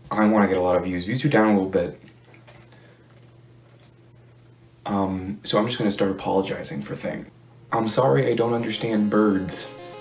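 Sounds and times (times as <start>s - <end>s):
ceiling fan humming: 0.0s - 10.0s.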